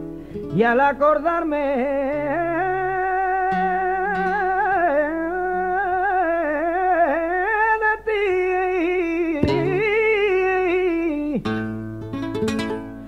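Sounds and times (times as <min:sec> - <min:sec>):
acoustic guitar: 0:00.0 - 0:13.0
man singing flamenco melisma: 0:00.4 - 0:13.0.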